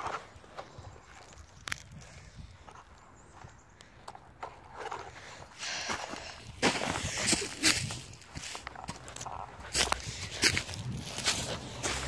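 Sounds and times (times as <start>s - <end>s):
footsteps on dry leaves: 6.2s - 12.0s.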